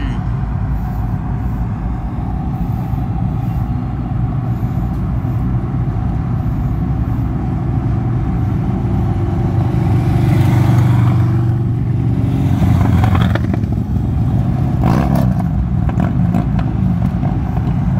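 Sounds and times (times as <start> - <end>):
car road and engine noise: 0.0 - 17.9
motorcycle riding alongside: 0.0 - 17.9.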